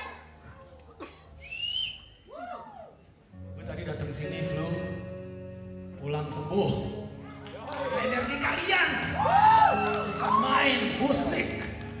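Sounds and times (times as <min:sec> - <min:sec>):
person whistling: 0:01.4 - 0:02.2.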